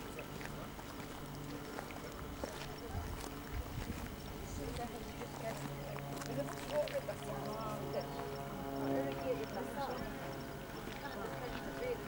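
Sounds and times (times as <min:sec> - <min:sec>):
distant voices: 0:00.0 - 0:12.0
wind rumble on microphone: 0:00.0 - 0:12.0.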